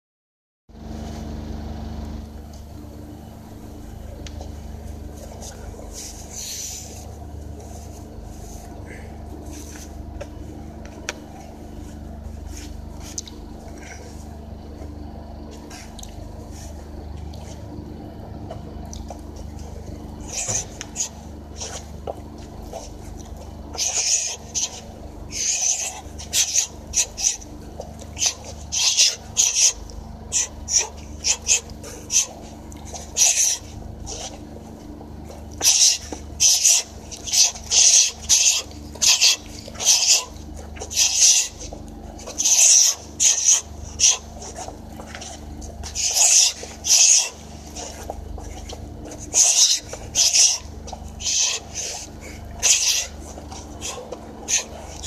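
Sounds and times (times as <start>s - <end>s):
sharp hissing breaths: 20.1s - 55.0s.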